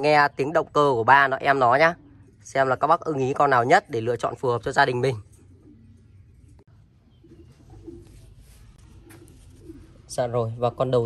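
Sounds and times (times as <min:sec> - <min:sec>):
faint bird calls: 0:00.0 - 0:11.0.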